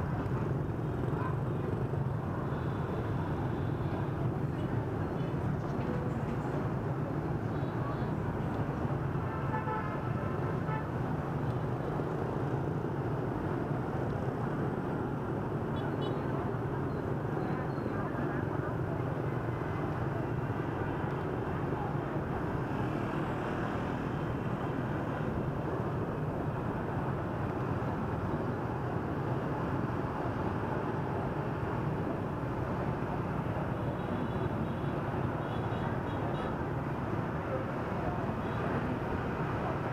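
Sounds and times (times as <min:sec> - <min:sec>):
motorbike and scooter traffic: 0:00.0 - 0:39.9.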